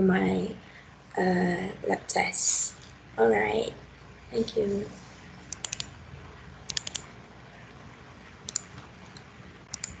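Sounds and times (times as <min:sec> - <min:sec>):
quick computer clicks: 0:05.5 - 0:05.9, 0:06.7 - 0:07.1, 0:08.5 - 0:08.9, 0:09.7 - 0:10.0.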